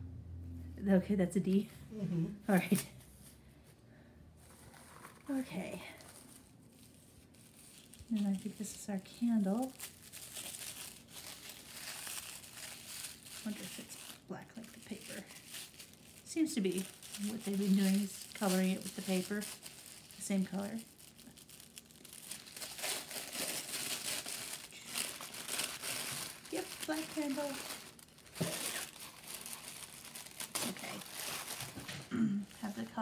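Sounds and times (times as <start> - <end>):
wrapping paper crinkling: 4.4 - 33.0.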